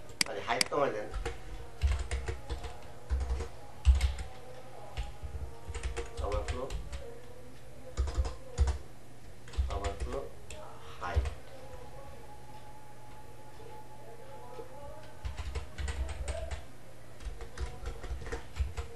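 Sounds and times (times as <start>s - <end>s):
computer keyboard typing: 0.0s - 7.1s, 8.0s - 8.8s, 9.4s - 11.4s, 15.0s - 18.9s.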